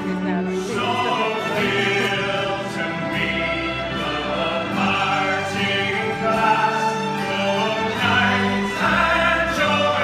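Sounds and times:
folk ensemble playing: 0.0s - 10.0s
many voices singing together: 0.7s - 10.0s.

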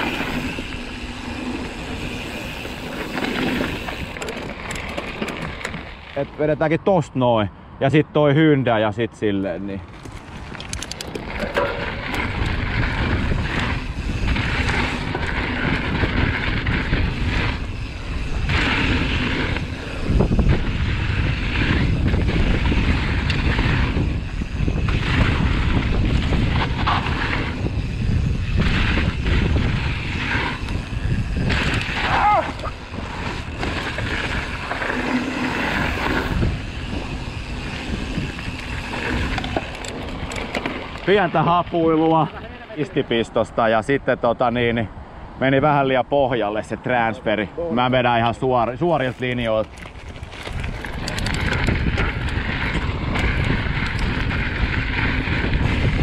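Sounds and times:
wind buffeting on microphone: 0.0s - 6.0s, 9.8s - 42.6s, 48.1s - 56.0s
bike tyres rumbling on dirt: 0.0s - 6.7s, 9.7s - 43.2s, 47.8s - 56.0s.

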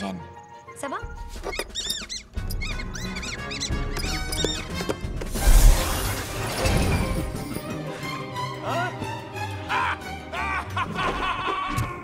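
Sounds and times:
orchestral film score: 0.0s - 12.0s
mouse squeaking: 1.2s - 5.0s.

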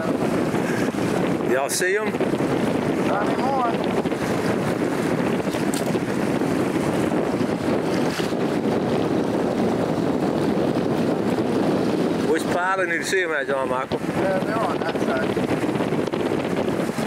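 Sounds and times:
sea wash: 0.0s - 17.0s
wind rushing over microphone: 0.0s - 17.0s.

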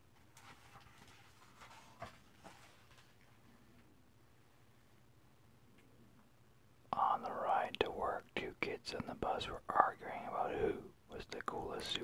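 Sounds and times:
person whispering: 6.9s - 12.0s.

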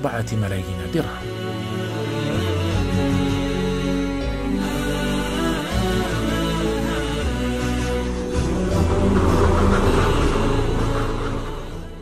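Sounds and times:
background music: 0.0s - 12.0s
low rumble with rushing noise: 7.6s - 12.0s.

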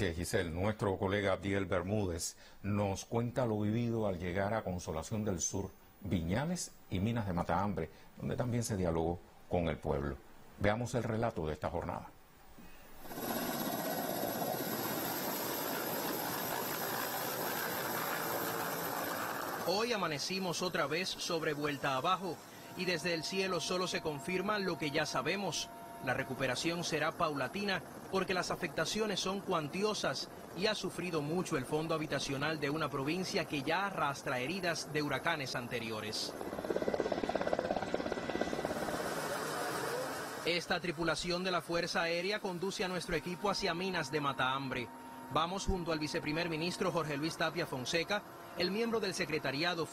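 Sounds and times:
high-pitched whine: 12.2s - 49.9s
helicopter engine and rotor: 12.9s - 49.9s.

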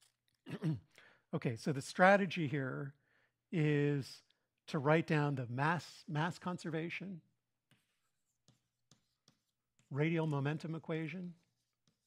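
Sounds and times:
chalk tapping and scraping: 7.5s - 12.0s.

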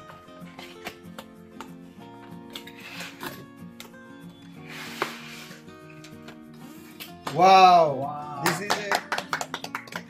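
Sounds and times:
background music: 0.0s - 10.0s
cardboard packaging rubbing: 4.6s - 5.7s.

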